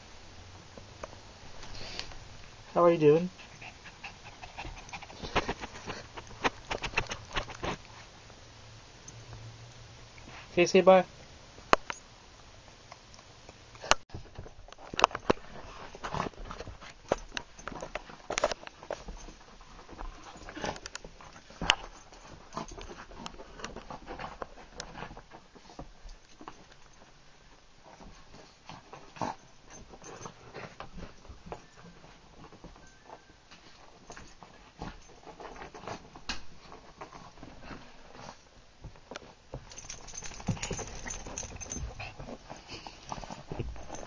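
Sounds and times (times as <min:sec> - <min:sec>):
dog scuffling on carpet: 0:03.3 - 0:08.3, 0:14.2 - 0:44.0.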